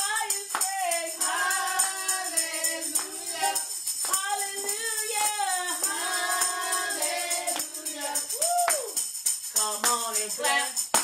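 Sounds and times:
woman singing gospel: 0:00.0 - 0:08.3
tambourine: 0:00.0 - 0:11.0.

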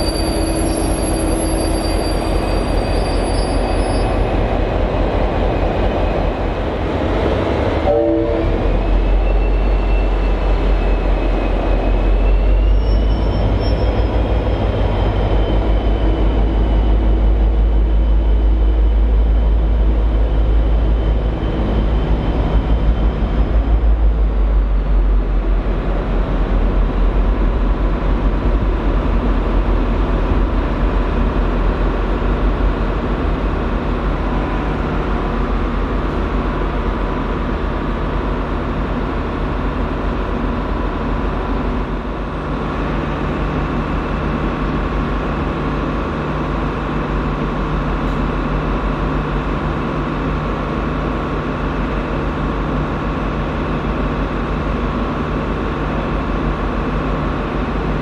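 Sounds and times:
diesel locomotive engines running: 0:00.0 - 0:58.0.

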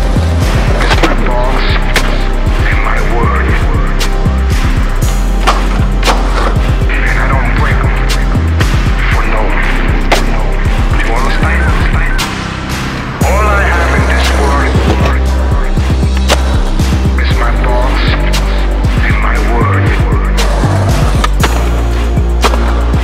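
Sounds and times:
hip-hop backing track: 0:00.0 - 0:23.0.

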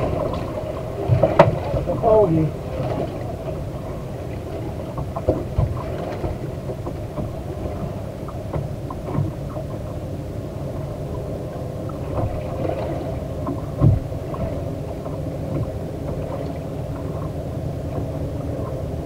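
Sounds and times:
knocks and thump on boat: 0:00.0 - 0:19.0
motorboat rumble: 0:00.0 - 0:19.0.

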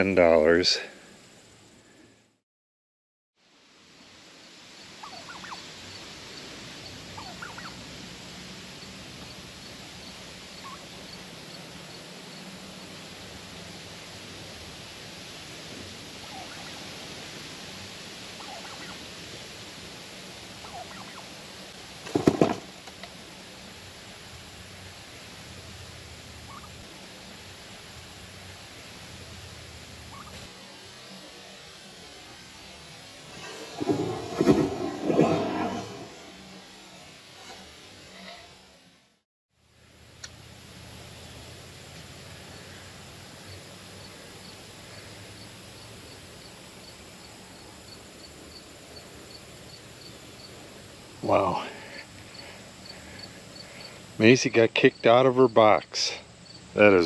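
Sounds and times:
turkey calling: 0:05.0 - 0:05.7, 0:07.1 - 0:07.8, 0:10.6 - 0:11.0, 0:16.2 - 0:16.8, 0:18.4 - 0:19.0, 0:20.6 - 0:21.4, 0:26.5 - 0:26.8, 0:30.1 - 0:30.5.

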